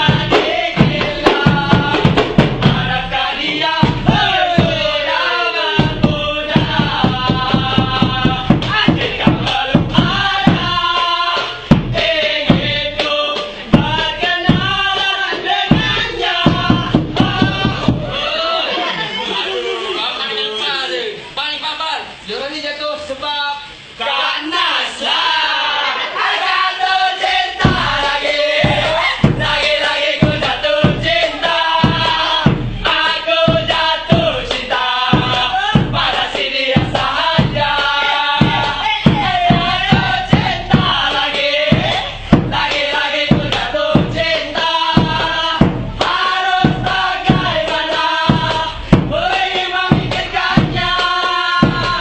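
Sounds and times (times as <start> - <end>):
frame drums beaten in rhythm: 0.0 - 18.4, 26.8 - 52.0
group of voices chanting: 0.0 - 20.4, 23.7 - 52.0.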